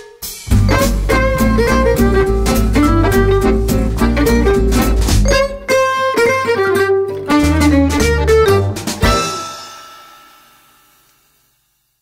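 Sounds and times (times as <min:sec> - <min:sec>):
acoustic swing band chord: 0:00.5 - 0:05.6.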